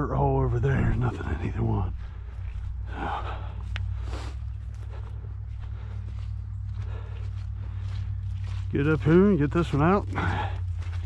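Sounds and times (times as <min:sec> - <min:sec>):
footsteps through dry grass and mud: 0:00.0 - 0:11.0
steady low rumble: 0:00.0 - 0:11.0.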